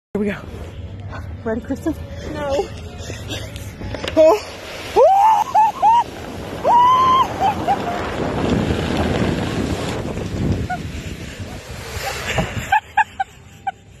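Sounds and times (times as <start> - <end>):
wind buffeting microphone: 4.9 - 13.3.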